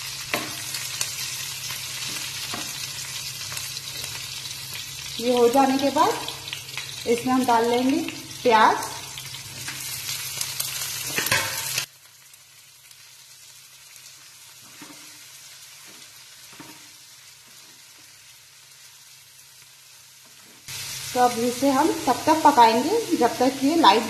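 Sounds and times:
onions sizzling in hot oil: 0:00.0 - 0:24.0.

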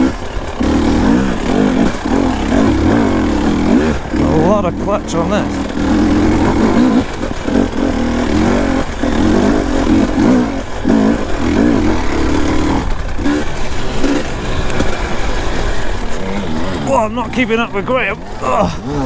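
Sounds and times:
dirt bike engine revving: 0:00.0 - 0:19.0.

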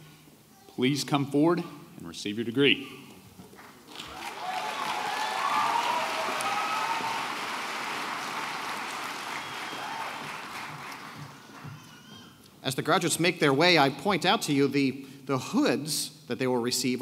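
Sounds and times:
audience applauding: 0:03.9 - 0:12.1
cheering voices: 0:03.9 - 0:12.2.

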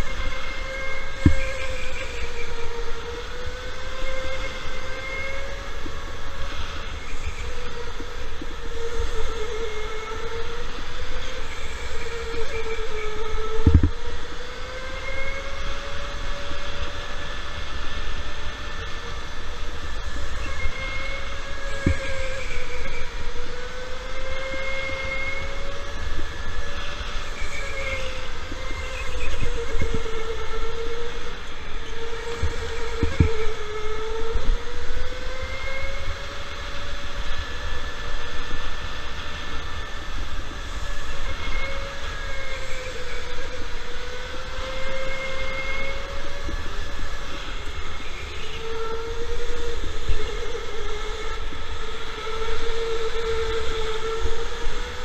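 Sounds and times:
electric go-kart motor whining: 0:00.0 - 0:55.0.

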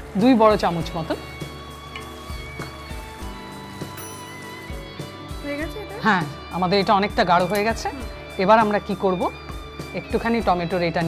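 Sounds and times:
background music with held tones: 0:00.0 - 0:11.0.

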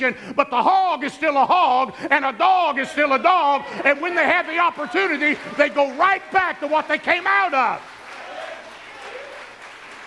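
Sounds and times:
congregation applauding: 0:03.3 - 0:10.0.

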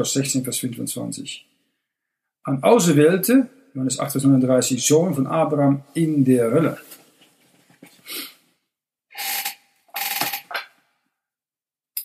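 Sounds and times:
man breathing or sniffing: 0:07.9 - 0:08.4.

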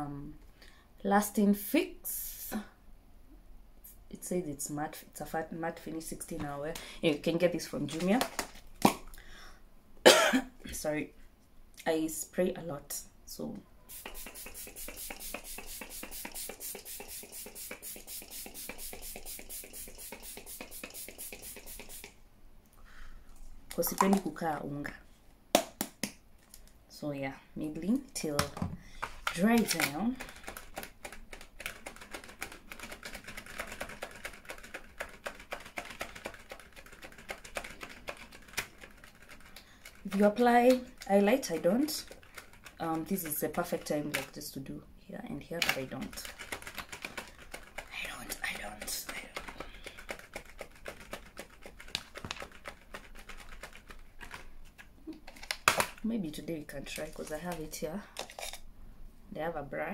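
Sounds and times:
woman speaking: 0:00.0 - 0:00.4, 0:01.0 - 0:02.7, 0:04.1 - 0:08.3, 0:10.7 - 0:11.1, 0:11.8 - 0:13.6, 0:23.7 - 0:25.0, 0:26.9 - 0:28.6, 0:29.3 - 0:30.2, 0:40.0 - 0:42.1, 0:42.8 - 0:46.3, 0:47.9 - 0:49.4, 0:56.0 - 0:58.1, 0:59.3 - 0:59.9
makeup items clicking and tapping: 0:23.7 - 0:24.4.

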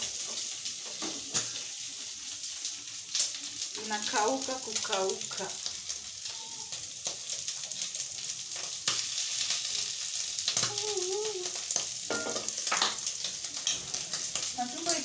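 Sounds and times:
tripe sizzling in a pot: 0:00.0 - 0:15.0.

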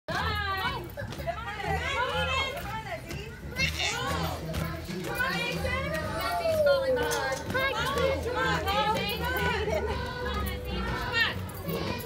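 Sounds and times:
children chattering and calling out: 0:00.1 - 0:12.0
pulsing bass music: 0:00.1 - 0:12.0.

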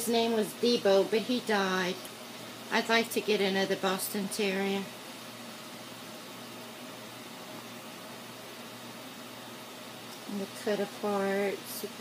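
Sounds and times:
steady room tone hiss: 0:00.0 - 0:12.0.

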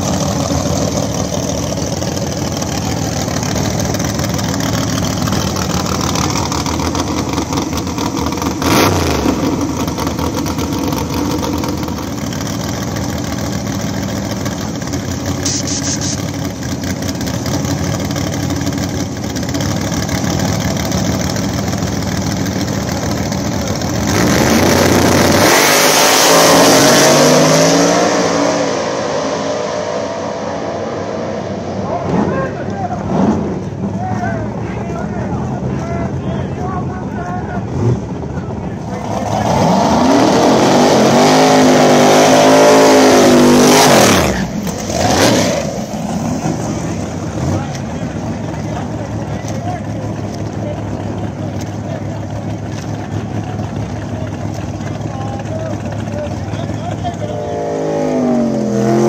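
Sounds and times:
drag-race car engines idling: 0:00.0 - 0:25.7, 0:29.6 - 0:59.0
cars launching at full throttle: 0:04.3 - 0:12.9, 0:23.8 - 0:36.2, 0:37.6 - 0:59.0
hiss of nitrous purge: 0:15.4 - 0:16.2
sharp engine burst: 0:15.4 - 0:16.4.

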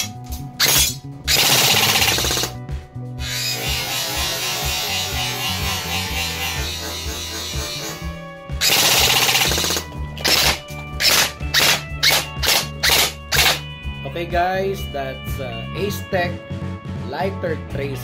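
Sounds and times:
background music: 0:00.0 - 0:18.0
airsoft rifle bursts: 0:00.6 - 0:02.6, 0:08.6 - 0:13.6.

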